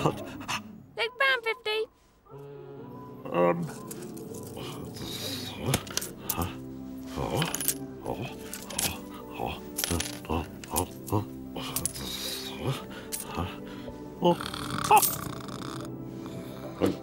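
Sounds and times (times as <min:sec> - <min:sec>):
background music: 0:00.0 - 0:17.0
coins clinking on counter: 0:07.2 - 0:12.2.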